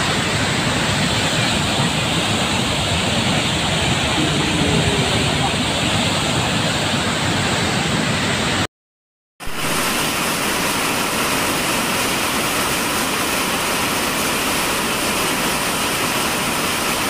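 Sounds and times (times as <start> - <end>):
heavy rain falling: 0.0 - 8.7, 9.4 - 17.0.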